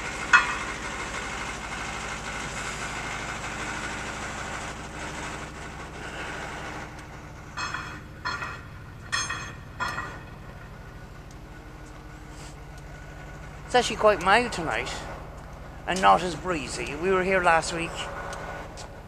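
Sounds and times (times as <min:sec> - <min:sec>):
engine idling: 0:00.0 - 0:19.0.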